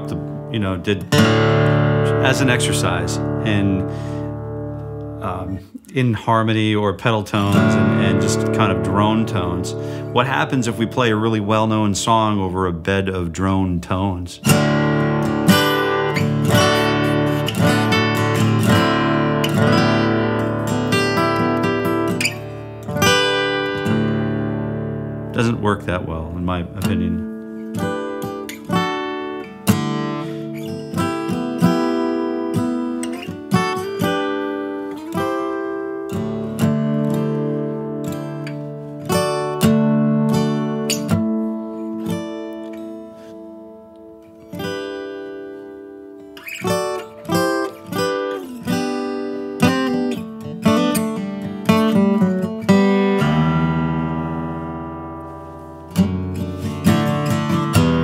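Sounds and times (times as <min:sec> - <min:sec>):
acoustic guitar playing: 0:00.0 - 0:58.0.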